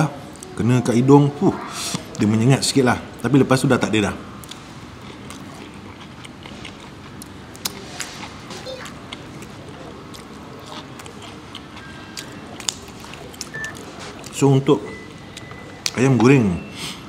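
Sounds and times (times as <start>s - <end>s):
low background hum: 0.0s - 17.0s
man chewing: 4.4s - 16.0s.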